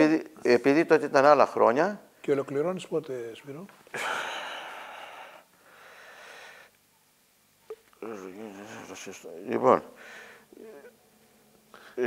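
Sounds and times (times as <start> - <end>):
quiet breath in: 4.4 - 6.8, 10.0 - 10.5, 11.7 - 12.0.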